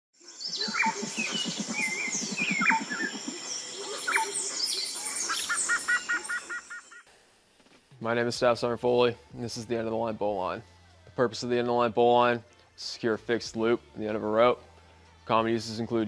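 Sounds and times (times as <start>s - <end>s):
high insect drone: 0.2s - 6.8s
birds calling: 0.3s - 7.0s
low rapid pulsing call: 0.5s - 6.9s.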